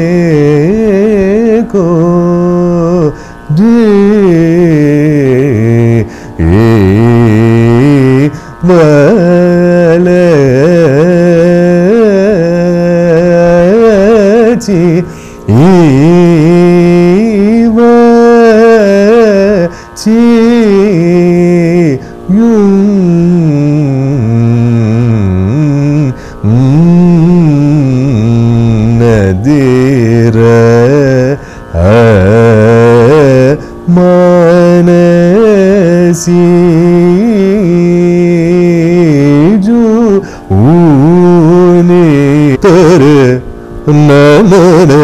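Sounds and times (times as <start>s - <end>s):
man singing gliding notes: 0.0s - 45.0s
singer breathing: 3.1s - 3.5s, 6.0s - 6.4s, 8.3s - 8.6s, 15.0s - 15.5s, 19.7s - 20.0s, 22.0s - 22.3s, 26.1s - 26.4s, 31.4s - 31.8s, 33.6s - 33.8s, 40.2s - 40.5s.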